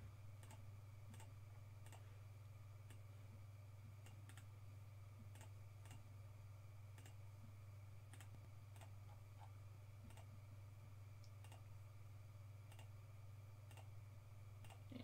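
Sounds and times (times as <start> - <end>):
low electrical hum: 0.0 - 15.0
computer mouse clicks: 0.4 - 2.0, 4.0 - 4.5, 5.3 - 6.0, 7.0 - 7.2, 8.1 - 8.9, 10.1 - 10.3, 11.2 - 11.6, 12.7 - 12.9, 13.7 - 13.9.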